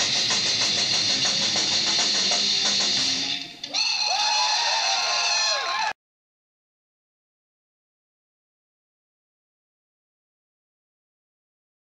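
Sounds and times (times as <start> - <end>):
distorted electric guitars: 0.0 - 5.3.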